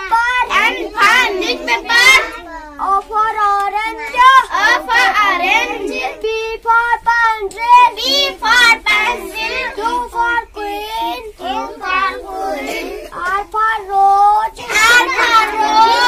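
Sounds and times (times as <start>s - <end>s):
boy chanting sing-song: 0.0s - 16.0s.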